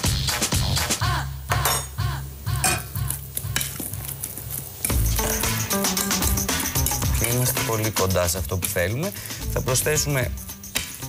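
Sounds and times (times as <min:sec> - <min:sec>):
background music with bass beat: 0:00.0 - 0:03.7, 0:04.9 - 0:11.0.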